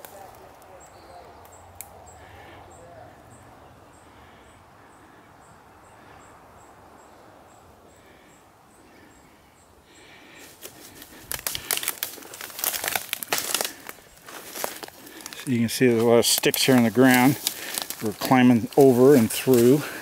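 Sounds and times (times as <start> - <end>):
sticks crackling and snapping: 1.4 - 2.0, 10.4 - 20.0.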